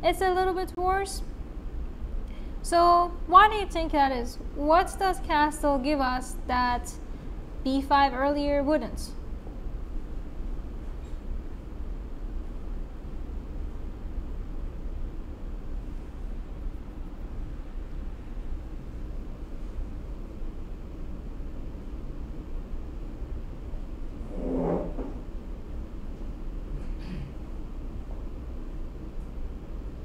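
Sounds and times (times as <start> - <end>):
low room rumble and hiss: 0.0 - 30.0.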